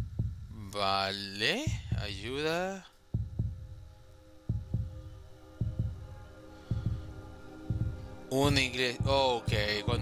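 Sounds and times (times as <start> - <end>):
heartbeat thumps: 0.0 - 0.6, 1.7 - 2.4, 3.1 - 10.0
faint sustained drone: 0.0 - 10.0.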